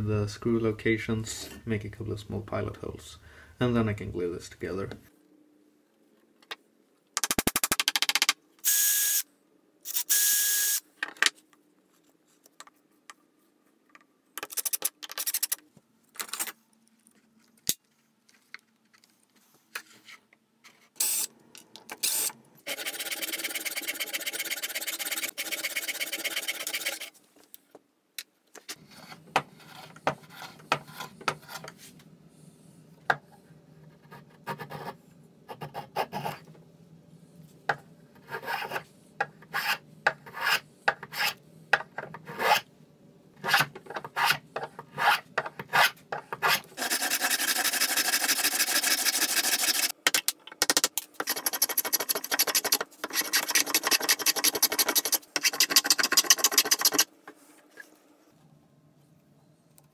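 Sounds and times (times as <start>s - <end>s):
rasping on wood: 22.7s - 27.1s, 45.8s - 49.9s, 51.2s - 57.1s.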